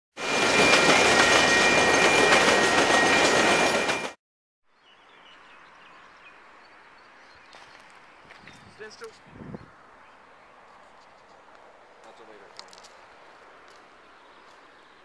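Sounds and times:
high wheel squeal: 0:00.2 - 0:04.2
train rushing past: 0:00.2 - 0:04.2
faint outdoor background: 0:04.6 - 0:15.0.

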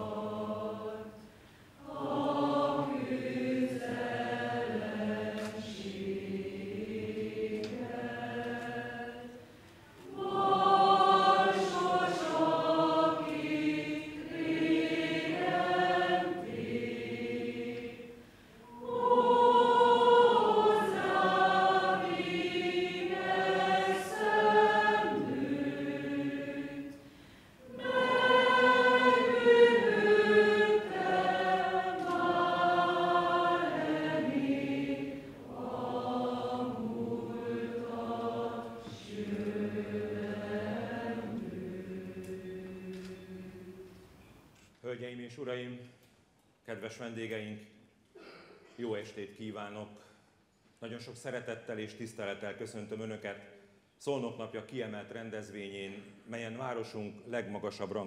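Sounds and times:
women's choir singing: 0:00.0 - 0:44.2.

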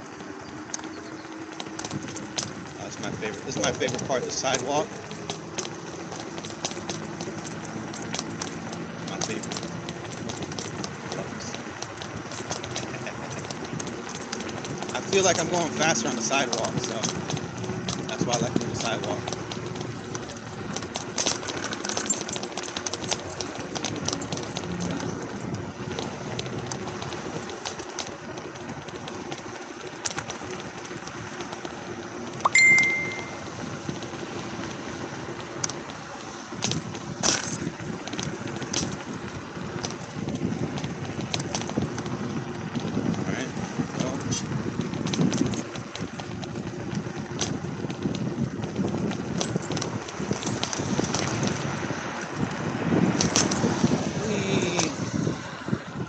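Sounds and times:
clicks over sidewalk joints: 0:00.0 - 0:56.0
road traffic: 0:00.0 - 0:56.0
wind and tyre noise: 0:00.0 - 0:56.0
short high beep: 0:32.5 - 0:33.4.

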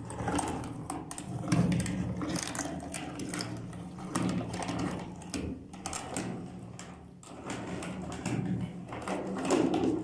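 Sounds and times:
hand-cranked meat grinder grinding: 0:00.0 - 0:10.0.

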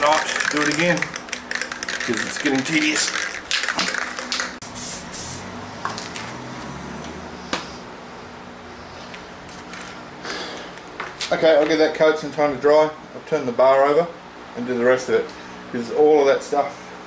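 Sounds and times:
aerosol can rattling: 0:00.0 - 0:04.6
spray paint hissing: 0:00.0 - 0:05.5.

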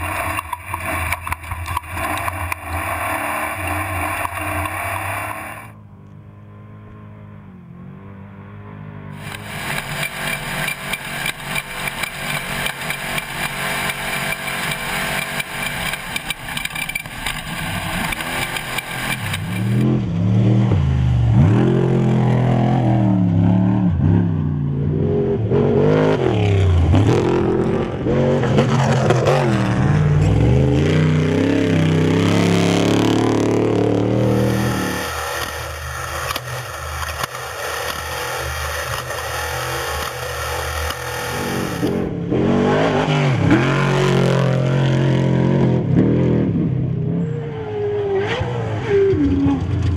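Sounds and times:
rattle and clatter in cab: 0:00.0 - 0:03.2, 0:09.2 - 0:19.9
race truck engine revving: 0:00.0 - 0:49.9.

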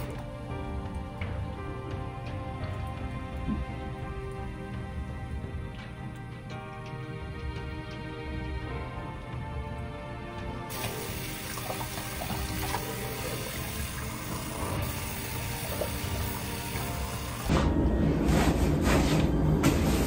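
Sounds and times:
quiet background music: 0:00.0 - 0:20.0
tap water running into sink: 0:10.7 - 0:17.5.

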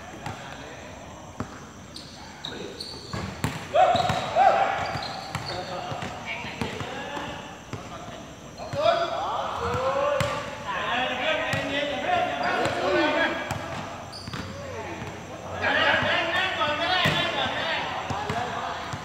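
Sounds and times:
players calling out: 0:00.0 - 0:19.0
basketball bouncing on hard court: 0:03.1 - 0:07.9.

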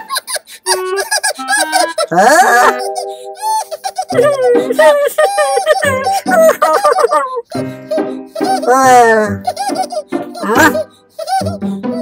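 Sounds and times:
squeaky cartoon character voice: 0:00.7 - 0:06.9, 0:08.4 - 0:12.0.

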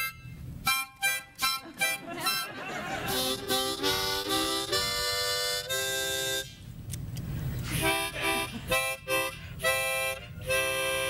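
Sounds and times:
harmonica chord: 0:00.0 - 0:06.6, 0:07.7 - 0:11.0
short harmonica notes: 0:00.0 - 0:06.7, 0:07.6 - 0:11.0.

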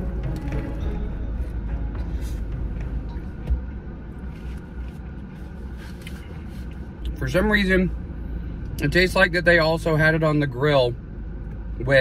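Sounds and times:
car rumble: 0:00.0 - 0:12.0.

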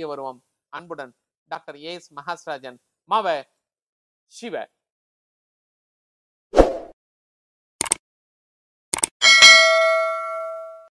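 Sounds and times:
notification bell ding: 0:09.2 - 0:10.9.

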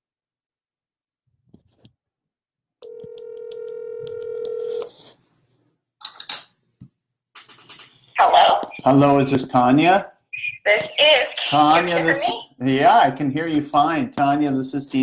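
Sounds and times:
phone clicks: 0:02.8 - 0:04.9
telephone ringback tone: 0:02.8 - 0:04.9
person speaking on phone: 0:08.2 - 0:09.4, 0:10.4 - 0:13.0.

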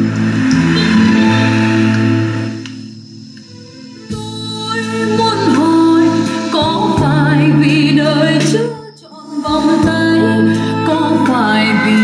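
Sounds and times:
instrumental music over speakers: 0:00.0 - 0:08.8.

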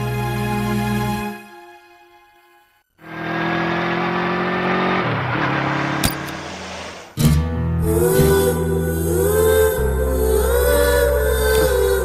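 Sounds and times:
vehicle passing by: 0:03.0 - 0:07.2.

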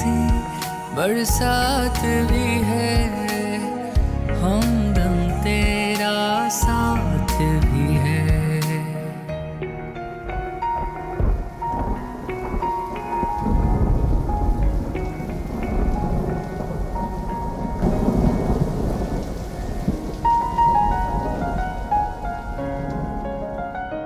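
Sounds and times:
rain: 0:00.0 - 0:08.4, 0:09.9 - 0:23.8
thunder rumbling: 0:09.6 - 0:24.0.

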